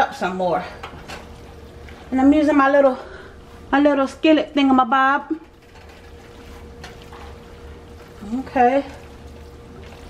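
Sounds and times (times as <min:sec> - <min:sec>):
faint steady hum: 0:00.0 - 0:10.0
spatula stirring pasta wet sloshing: 0:05.4 - 0:10.0.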